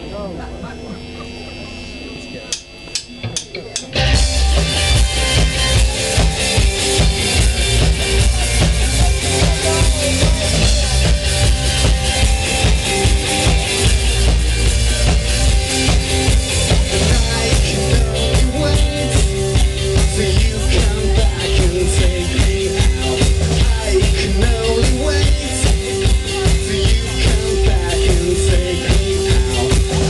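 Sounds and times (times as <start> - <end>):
crowd talking: 0.0 - 30.0
driving drum beat: 0.0 - 30.0
live rock band playing: 0.0 - 30.0
count-in clicks: 2.5 - 4.0.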